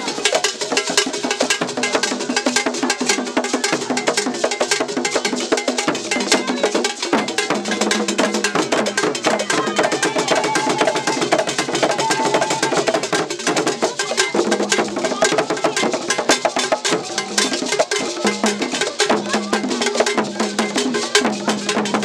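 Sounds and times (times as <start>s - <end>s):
fast hand drumming: 0.0s - 22.0s.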